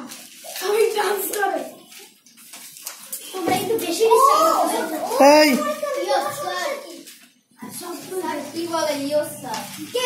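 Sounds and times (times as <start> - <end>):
boys talking: 0.4 - 2.2, 2.9 - 10.0.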